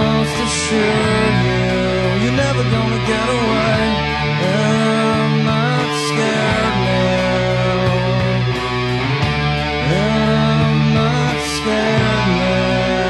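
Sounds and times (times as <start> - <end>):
bass guitar: 0.0 - 13.0
distorted electric guitar chords: 0.0 - 13.0
drums: 0.0 - 13.0.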